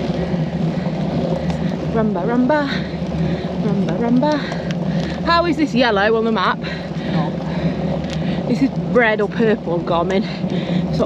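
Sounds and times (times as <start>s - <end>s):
road rumble: 0.0s - 11.0s.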